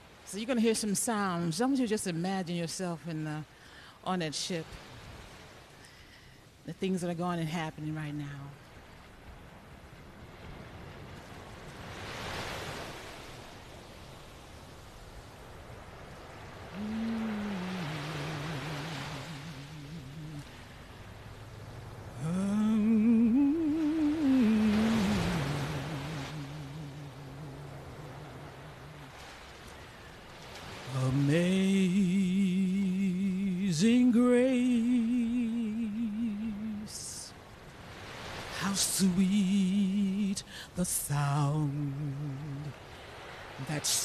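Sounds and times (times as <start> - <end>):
ocean waves washing in: 0.0 - 44.0
low voice moaning a tune: 16.7 - 20.6, 22.2 - 29.1.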